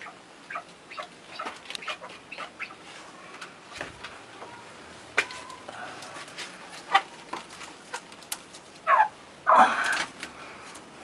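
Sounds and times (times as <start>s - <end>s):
partridge calls: 0.0s - 2.8s, 8.8s - 9.2s.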